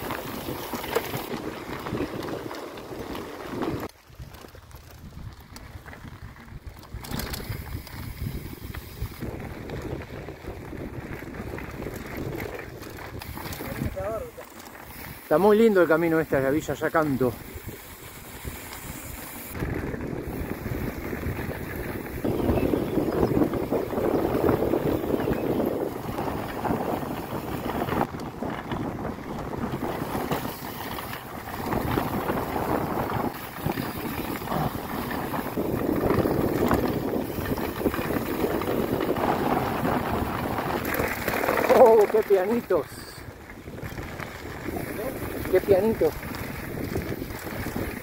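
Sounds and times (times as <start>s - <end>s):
bike tyres rumbling on dirt: 0.0s - 48.0s
wind buffeting microphone: 0.0s - 48.0s.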